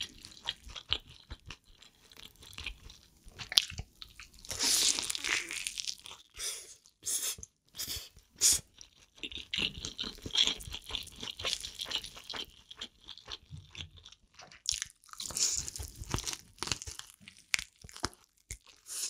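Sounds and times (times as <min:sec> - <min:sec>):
chewing crunchy fried chicken: 0:00.0 - 0:19.0.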